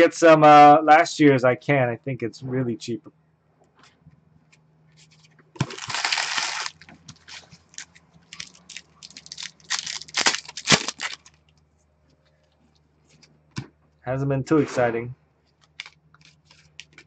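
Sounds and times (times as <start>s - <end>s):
cards rustling: 5.0s - 11.4s, 15.5s - 17.0s
plastic wrapper tearing: 5.6s - 11.4s, 15.6s - 17.0s.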